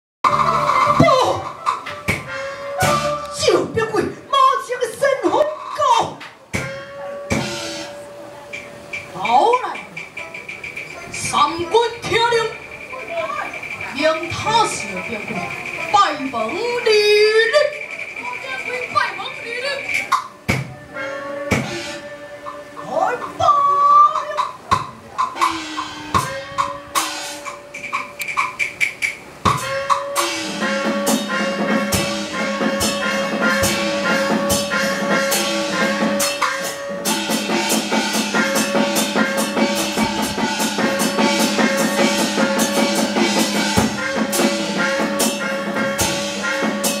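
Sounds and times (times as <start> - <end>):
sharp percussion strikes: 0.2 - 3.9, 5.2 - 23.4, 24.1 - 47.0
sustained instrumental notes: 0.2 - 47.0
high held note: 2.2 - 3.5, 6.6 - 9.2, 20.7 - 22.8, 25.2 - 28.3, 29.5 - 47.0
quick steady drum beat: 8.9 - 20.7, 24.4 - 47.0.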